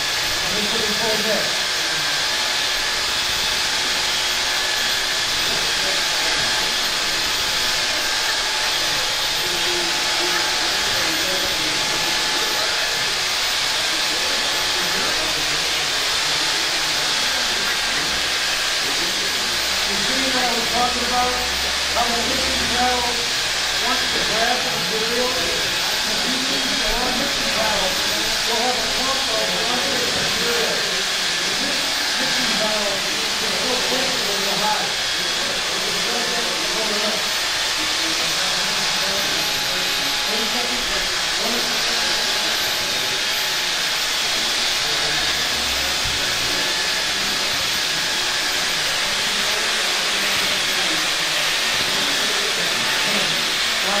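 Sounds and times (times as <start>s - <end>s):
electric drill mixing: 0.0s - 54.0s.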